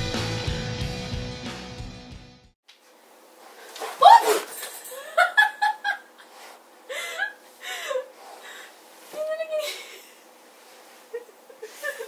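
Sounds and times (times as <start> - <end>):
background music: 0.0 - 2.5.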